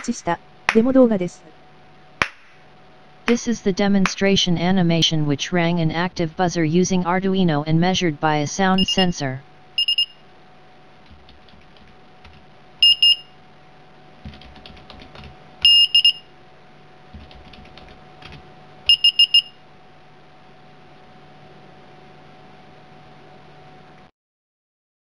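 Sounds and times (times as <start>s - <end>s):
low steady hum: 0.0s - 2.1s, 2.8s - 10.0s.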